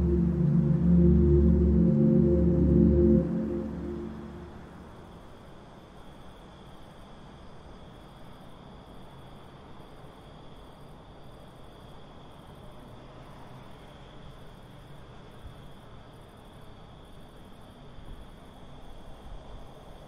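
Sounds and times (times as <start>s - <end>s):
thin high continuous tone: 0.0s - 5.1s
faint steady background noise: 0.0s - 20.0s.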